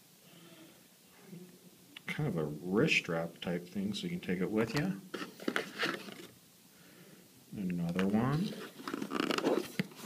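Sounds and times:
packaging rustling and clicking: 0:05.1 - 0:06.3, 0:07.9 - 0:10.0.

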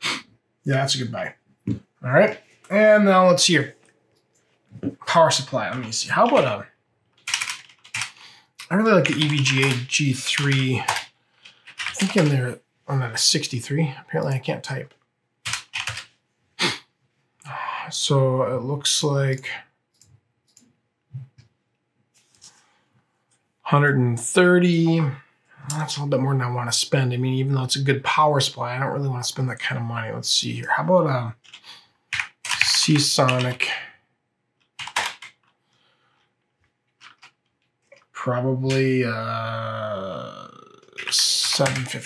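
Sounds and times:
computer keyboard keystrokes: 0:07.2 - 0:08.2, 0:09.0 - 0:11.0, 0:15.5 - 0:16.0, 0:34.7 - 0:35.5, 0:37.0 - 0:37.4.

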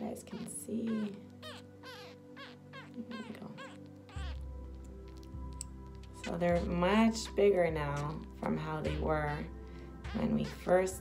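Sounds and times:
baby squirrel squeaking: 0:00.0 - 0:11.0
background music with held tones: 0:00.0 - 0:11.0.

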